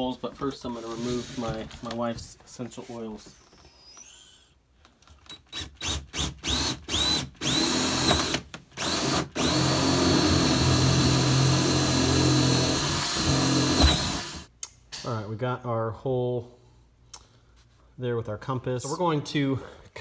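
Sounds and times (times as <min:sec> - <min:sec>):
cordless drill whine: 0:05.5 - 0:14.5.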